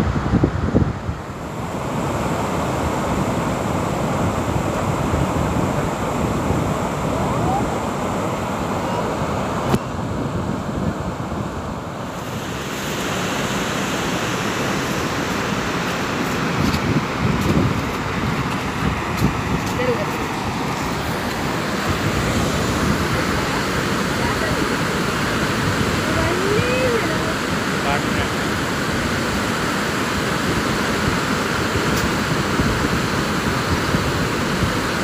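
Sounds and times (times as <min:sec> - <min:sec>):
wind buffeting microphone: 0:00.0 - 0:13.3, 0:14.0 - 0:35.0
water rushing over spillway: 0:00.0 - 0:35.0.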